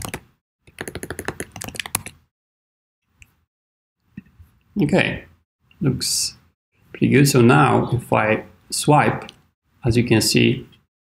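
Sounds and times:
computer keyboard keystrokes: 0.0 - 2.2.

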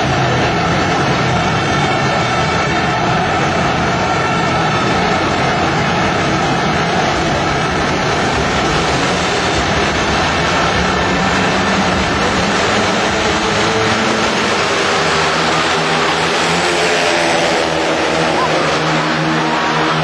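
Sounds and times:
motorcycle engines racing: 0.0 - 20.0.

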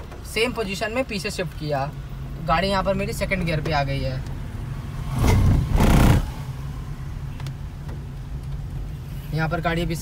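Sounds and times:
car engine and road hum: 0.0 - 10.0.

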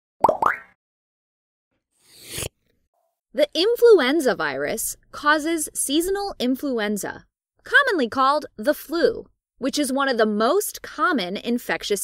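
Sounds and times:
rising pitch pops: 0.2 - 0.8.

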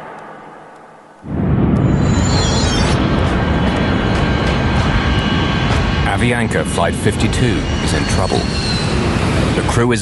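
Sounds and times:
jet airliner roar: 0.0 - 10.0.

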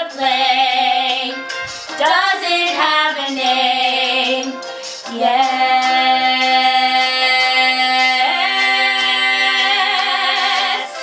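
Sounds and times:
two women singing a duet: 0.0 - 11.0.

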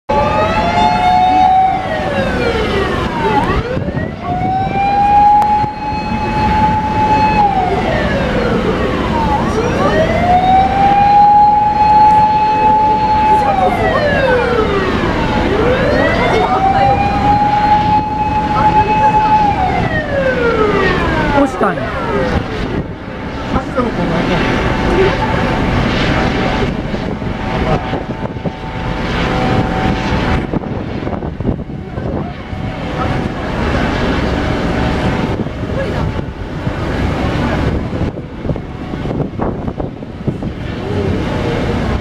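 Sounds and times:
fire engine siren wailing: 0.1 - 42.0.

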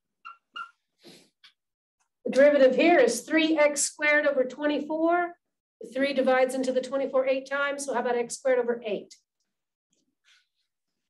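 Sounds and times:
marker squeaking on whiteboard: 0.2 - 0.9.

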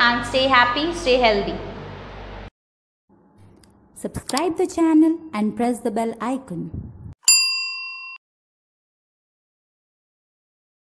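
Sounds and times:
bright bell ding: 7.2 - 8.2.

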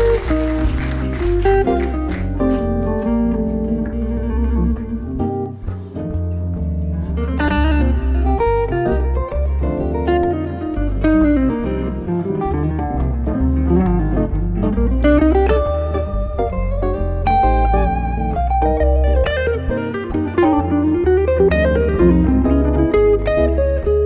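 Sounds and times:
jazz electric guitar duo: 0.0 - 24.0.

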